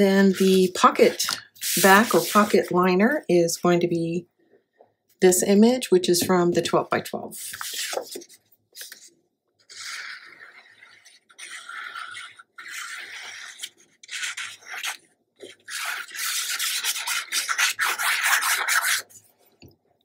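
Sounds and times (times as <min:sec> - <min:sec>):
glue bottle tip dragged across paper: 0:00.2 - 0:02.6, 0:09.7 - 0:15.0.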